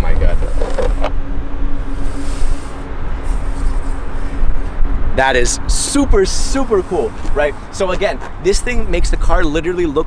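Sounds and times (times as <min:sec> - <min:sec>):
car flaps moving: 0:00.0 - 0:01.3
loud low rumble: 0:00.0 - 0:07.9
steady low hum: 0:00.0 - 0:10.0.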